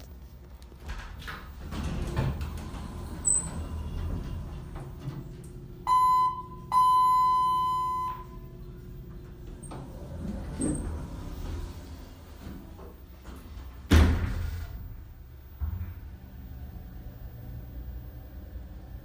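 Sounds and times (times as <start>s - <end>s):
elevator rumbling: 0.0s - 19.0s
faint hum: 0.0s - 19.0s
elevator doors sliding open: 0.7s - 19.0s.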